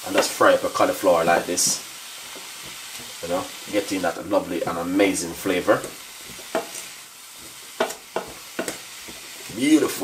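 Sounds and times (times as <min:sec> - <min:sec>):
food sizzling in a pan: 0:00.0 - 0:10.0
wooden spoon knocking on pan: 0:05.8 - 0:06.8, 0:07.4 - 0:09.3.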